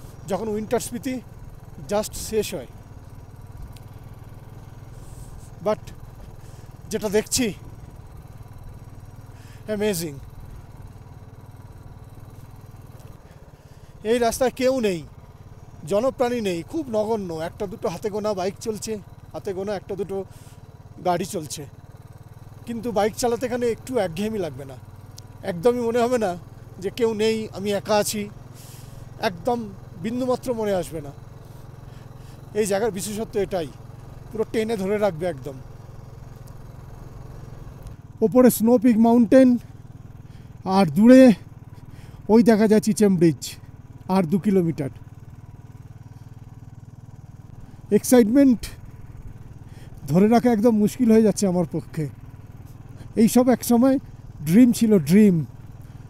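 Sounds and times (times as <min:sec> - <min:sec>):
motorcycle engine running: 0:00.0 - 0:56.0
man talking: 0:00.2 - 0:01.2, 0:01.8 - 0:02.7, 0:05.6 - 0:05.9, 0:06.9 - 0:07.6, 0:09.6 - 0:10.2, 0:14.0 - 0:15.1, 0:15.8 - 0:20.3, 0:21.0 - 0:21.7, 0:22.7 - 0:24.8, 0:25.4 - 0:28.3, 0:29.2 - 0:31.2, 0:32.5 - 0:35.6, 0:38.2 - 0:39.6, 0:40.6 - 0:41.4, 0:42.3 - 0:44.9, 0:47.9 - 0:48.8, 0:50.0 - 0:52.1, 0:53.1 - 0:55.5.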